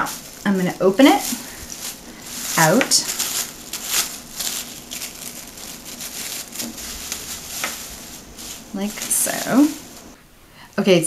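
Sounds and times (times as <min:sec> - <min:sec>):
plastic bag crinkling: 0:00.0 - 0:10.2.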